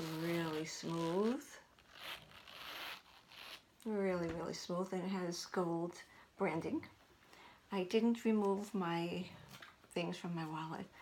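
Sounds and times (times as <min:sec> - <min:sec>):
wallet zipper zipping: 0:00.0 - 0:03.7.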